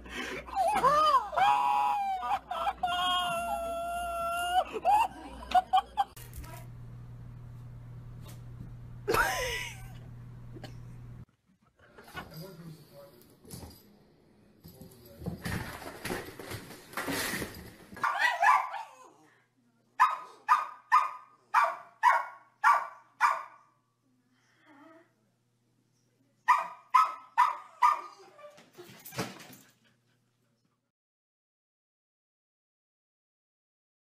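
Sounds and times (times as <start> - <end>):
small dog barking: 18.0 - 19.0, 20.0 - 23.6, 26.5 - 28.2.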